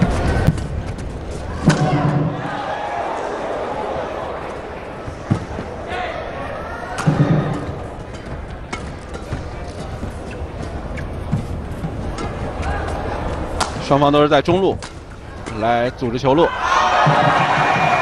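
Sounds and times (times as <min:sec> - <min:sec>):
arena crowd noise: 0:00.0 - 0:18.0
racket striking shuttlecock: 0:06.9 - 0:13.9, 0:14.8 - 0:15.6.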